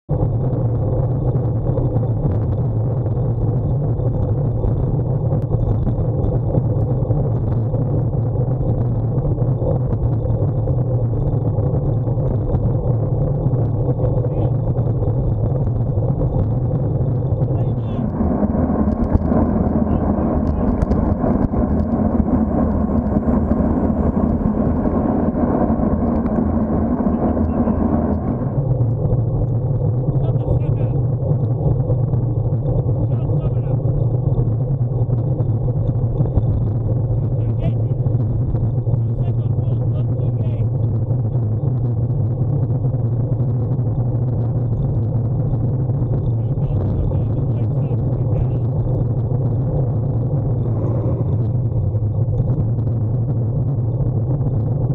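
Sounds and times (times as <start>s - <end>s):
wind rumble on microphone: 0.0s - 54.9s
car engine running: 0.1s - 54.9s
steady hum: 0.1s - 54.9s
tyre road noise: 0.2s - 39.4s, 48.5s - 54.9s.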